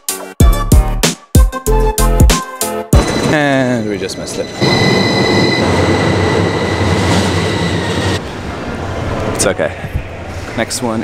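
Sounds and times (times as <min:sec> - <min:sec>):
high whine: 0:03.0 - 0:09.4
train wheels rumbling: 0:03.0 - 0:10.6.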